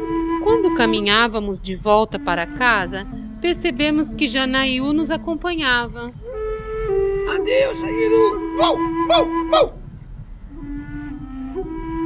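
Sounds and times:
flute holding long notes: 0.0s - 12.0s
person calling out loudly: 7.3s - 9.8s.

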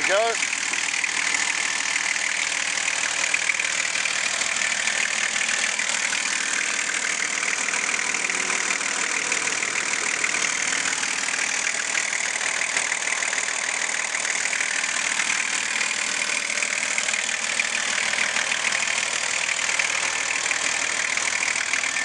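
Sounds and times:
diesel engine idling: 0.0s - 22.0s.

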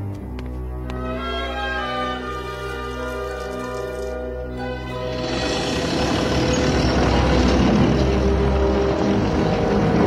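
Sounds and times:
music: 0.0s - 10.0s
earth-moving machinery rumbling: 4.9s - 10.0s.

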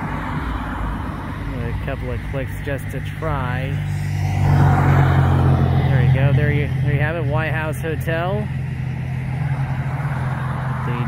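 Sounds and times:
car driving past: 3.0s - 11.0s.

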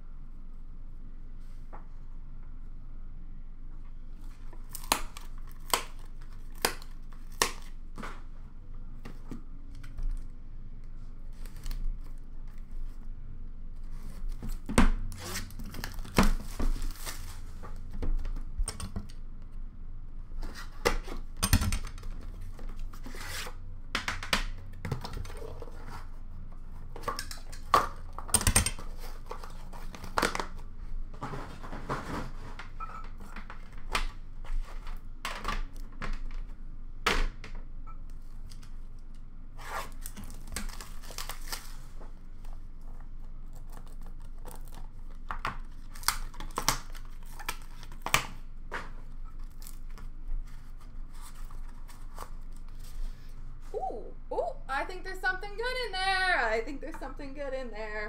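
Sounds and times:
cardboard packaging tearing: 15.1s - 17.5s, 39.6s - 42.0s, 43.4s - 48.2s.

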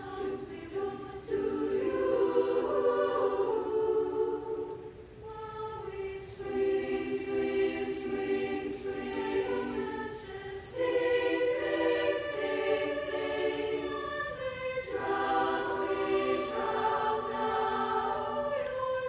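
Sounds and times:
choir singing sustained chords: 0.0s - 19.0s.

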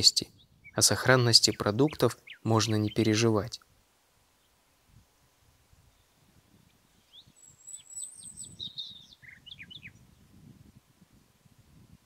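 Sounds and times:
songbird singing: 0.0s - 11.2s
wind rumble on microphone: 4.9s - 12.0s.

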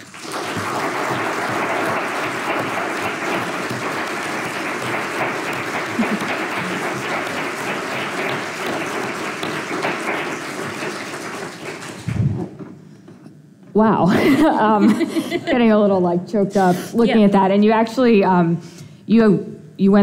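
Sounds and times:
audience applauding: 0.0s - 12.2s.

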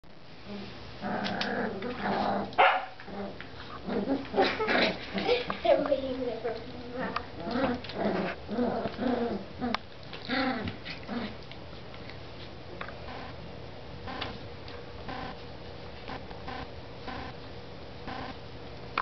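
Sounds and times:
puppies growling and yelping: 0.4s - 5.6s, 6.6s - 11.6s.

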